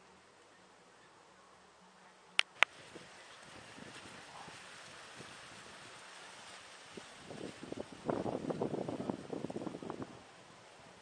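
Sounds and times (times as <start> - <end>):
faint steady low hum: 0.0 - 11.0
sharp clicks: 2.4 - 2.7.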